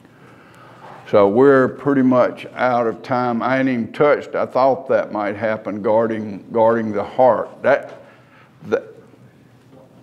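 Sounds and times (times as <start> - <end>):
man speaking syllable: 1.1 - 9.1.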